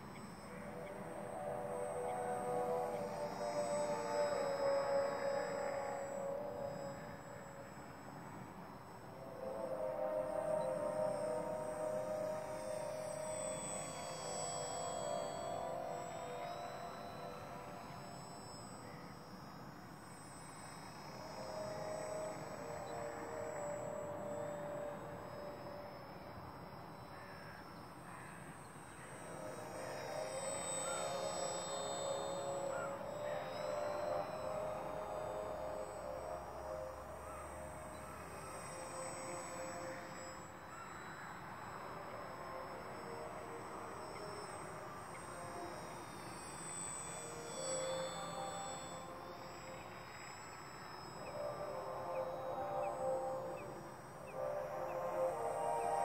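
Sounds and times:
model airplane motor buzzing: 28.6 - 36.2, 37.8 - 54.5.

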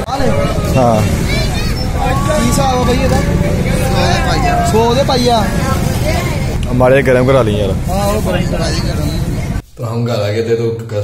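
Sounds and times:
steady low rumble: 0.0 - 10.0
people talking: 0.0 - 11.0.

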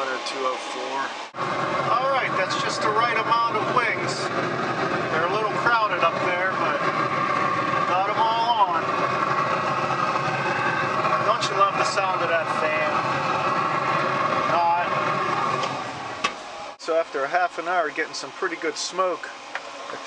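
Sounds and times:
grill fan humming: 0.0 - 20.0.

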